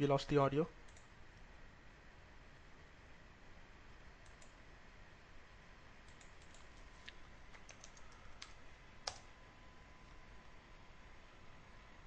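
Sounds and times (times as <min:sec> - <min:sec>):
low room hiss: 0:00.0 - 0:12.0
faint keyboard typing: 0:00.8 - 0:01.2, 0:04.2 - 0:04.6, 0:06.0 - 0:09.3.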